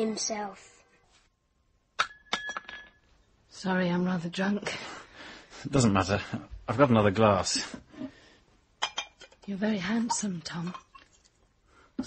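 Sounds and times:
wine glass clinking: 2.0 - 3.1, 8.8 - 11.1.

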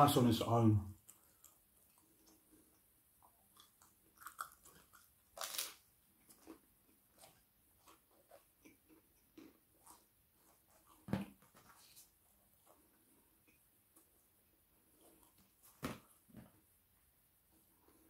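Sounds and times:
person chewing food: 1.0 - 16.3
crunchy bite: 3.6 - 6.6.

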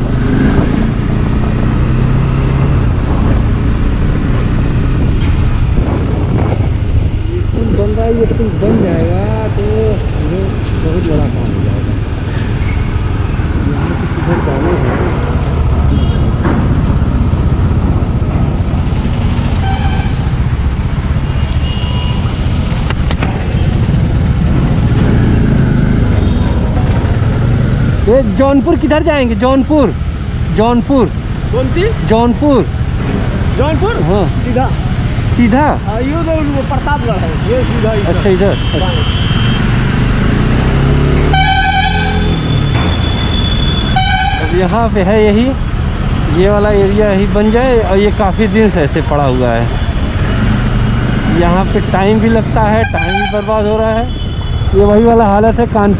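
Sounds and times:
motorcycle engine: 0.0 - 55.9
road rumble: 0.0 - 55.9
wind noise: 2.0 - 20.4
car horn toots: 15.9 - 16.4, 38.3 - 39.7, 41.3 - 44.6, 52.8 - 54.8.

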